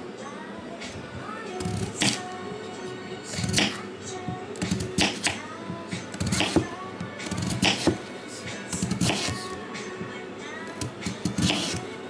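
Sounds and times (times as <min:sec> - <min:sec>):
background music with held tones: 0:00.0 - 0:12.0
knife cutting onto wooden board: 0:07.3 - 0:08.0, 0:08.8 - 0:09.4, 0:11.1 - 0:11.8.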